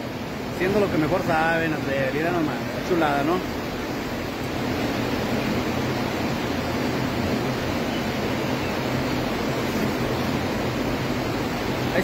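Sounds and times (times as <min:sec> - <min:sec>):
milking machinery hiss and hum: 0:00.0 - 0:12.0.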